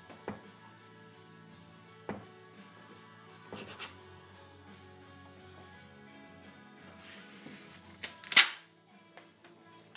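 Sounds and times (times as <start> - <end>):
paper rustling: 7.0 - 8.4.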